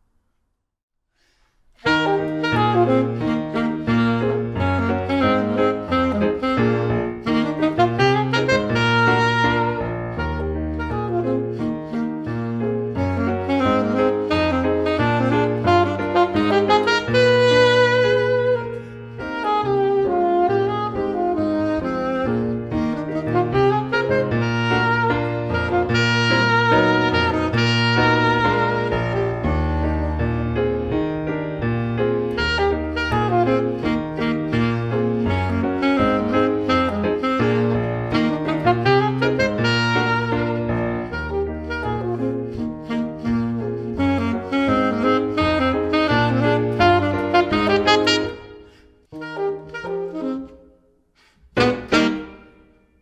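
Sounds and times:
alto saxophone melody: 1.2s - 53.0s
piano accompaniment: 1.2s - 53.0s.

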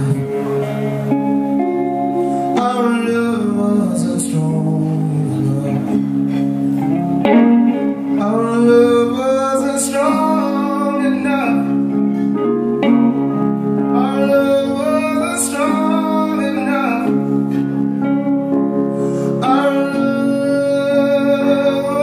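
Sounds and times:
man singing: 0.0s - 0.8s, 2.4s - 6.5s, 8.1s - 12.3s, 13.8s - 17.8s, 19.2s - 22.0s
electric guitar: 0.0s - 22.0s
stage piano: 0.0s - 22.0s.

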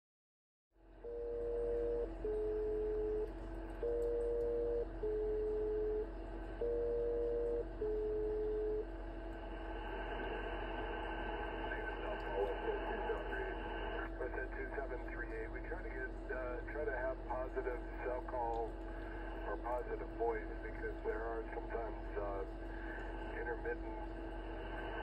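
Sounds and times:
two-tone radio call tones: 1.0s - 8.9s
radio band hiss and hum: 6.6s - 25.0s.

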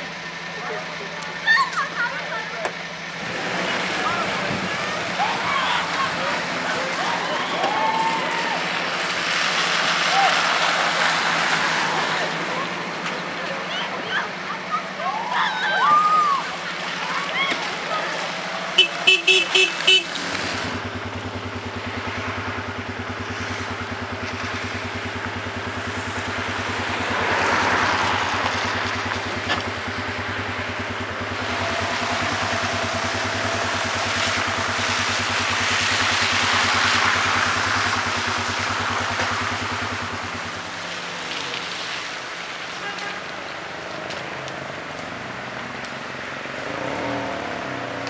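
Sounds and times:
tyres hissing on wet road: 0.0s - 48.0s
vehicle engine humming: 0.0s - 48.0s
car horn tooting: 18.7s - 20.2s, 42.8s - 43.4s.

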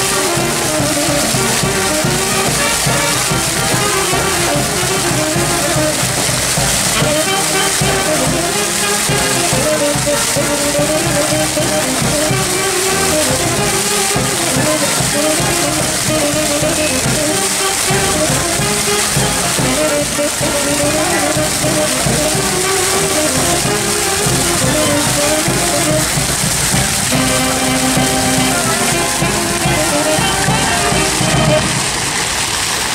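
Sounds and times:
brass band music: 0.0s - 32.5s
fountain water splashing: 0.0s - 32.9s.

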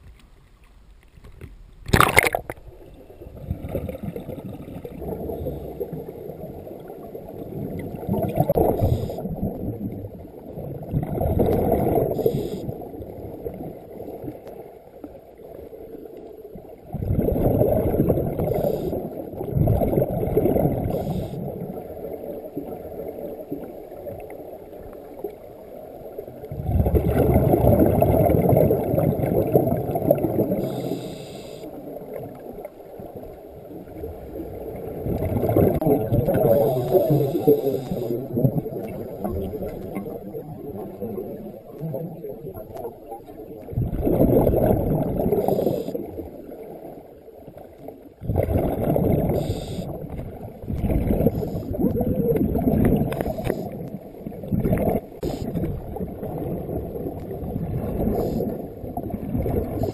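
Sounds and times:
exhaled bubbles underwater: 1.9s - 59.9s
inhaled air hissing: 12.1s - 12.7s, 20.8s - 21.4s, 30.6s - 31.8s, 36.6s - 38.2s, 49.3s - 49.9s.

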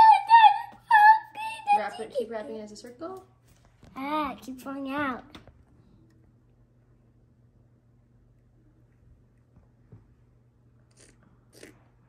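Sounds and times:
faint scratchy mouth sounds: 10.8s - 12.0s.

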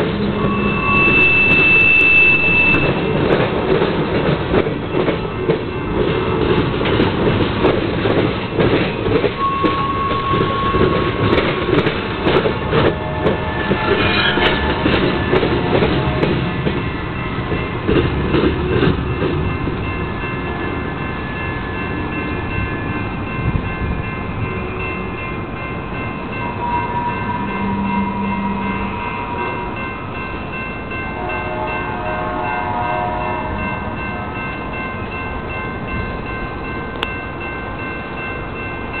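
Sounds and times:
freight train cars rolling: 0.0s - 39.0s
high-pitched whines: 0.1s - 3.0s.

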